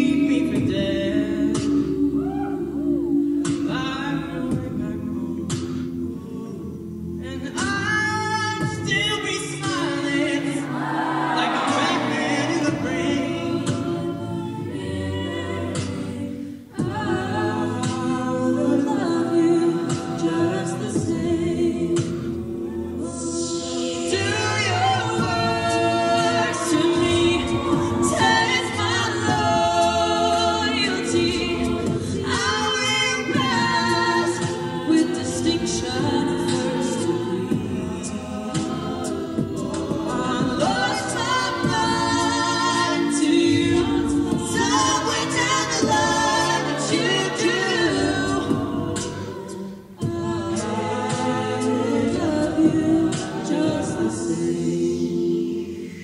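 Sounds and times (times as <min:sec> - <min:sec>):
backing singers' vocal chords: 0:00.0 - 0:56.0.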